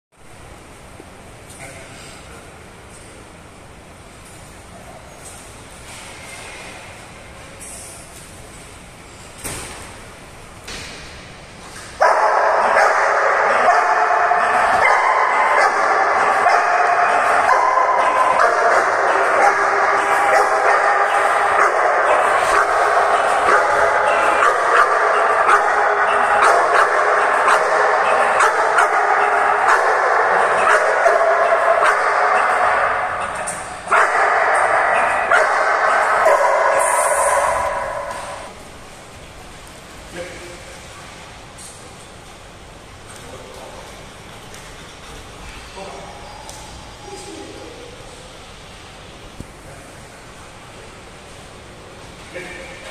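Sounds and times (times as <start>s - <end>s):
dog barking rapidly: 12.0s - 38.5s.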